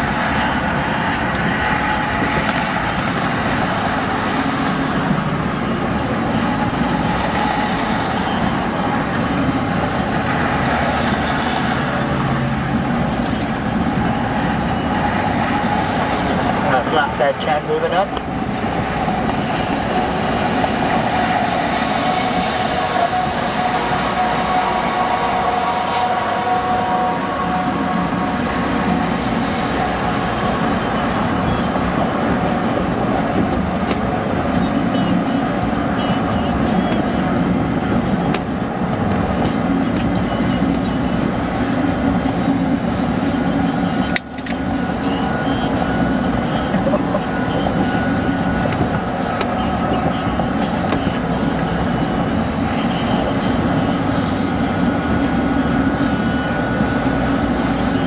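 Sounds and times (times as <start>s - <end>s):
car tyre and engine noise: 0.0s - 58.0s.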